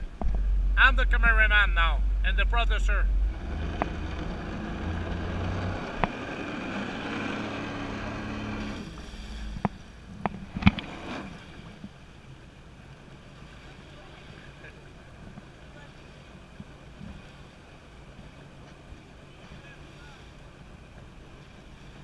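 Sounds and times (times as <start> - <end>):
jet ski engine idling: 0.0 - 22.0
water washing: 0.0 - 22.0
wind: 0.0 - 22.0.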